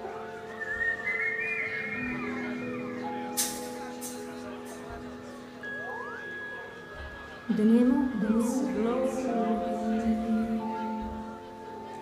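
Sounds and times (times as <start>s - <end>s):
sustained keyboard chords: 0.0s - 12.0s
whistled melody: 0.1s - 4.0s, 5.7s - 6.7s.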